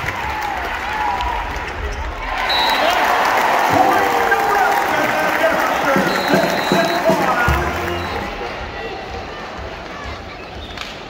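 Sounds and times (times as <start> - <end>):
crowd voices din: 0.0 - 11.0.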